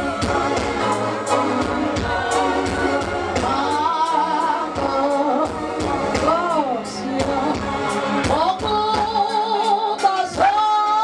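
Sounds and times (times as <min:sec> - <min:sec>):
steady beat of sharp hits: 0:00.0 - 0:03.8
crowd singing gospel song: 0:00.0 - 0:11.0.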